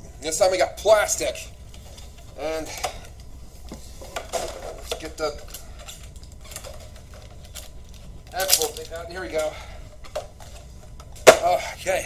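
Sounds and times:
plastic packaging handled: 3.6 - 11.2.

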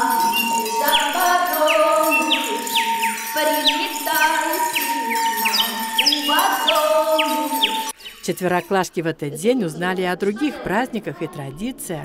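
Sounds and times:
festive folk music with sleigh bells: 0.0 - 8.7
festive folk music: 0.0 - 9.0.

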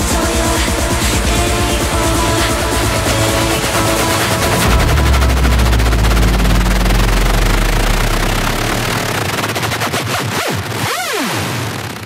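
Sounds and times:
low bass note: 0.0 - 9.7
white noise wash: 0.0 - 9.7
falling pitch sweeps: 0.0 - 10.1.

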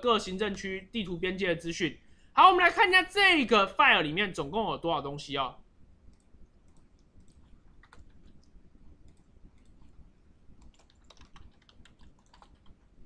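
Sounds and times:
faint keyboard typing: 6.0 - 13.0.

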